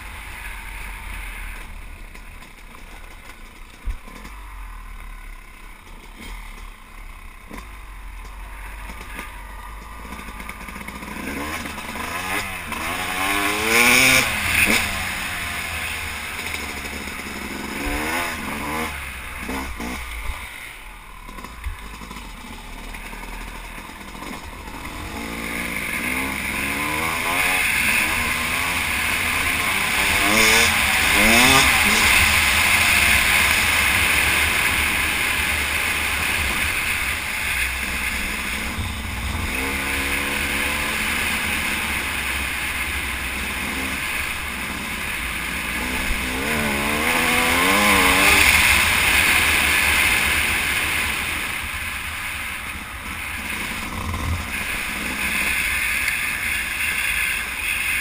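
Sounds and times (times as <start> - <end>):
two-stroke dirt bike engine revving: 0.0 - 58.0.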